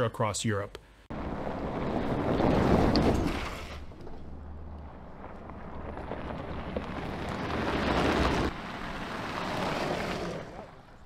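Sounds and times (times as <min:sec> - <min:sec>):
tyres crunching on gravel: 0:01.2 - 0:11.0.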